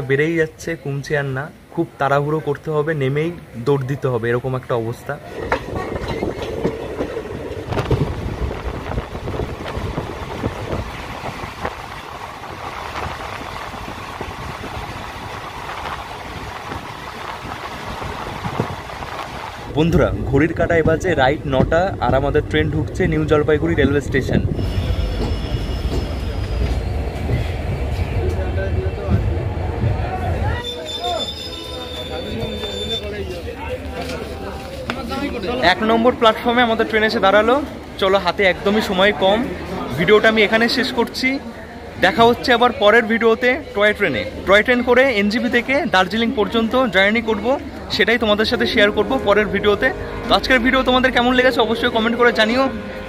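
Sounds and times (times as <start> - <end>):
train coaches rumbling: 0.0 - 53.0
wind buffeting microphone: 5.2 - 30.6
train wheels clicking: 24.6 - 35.3.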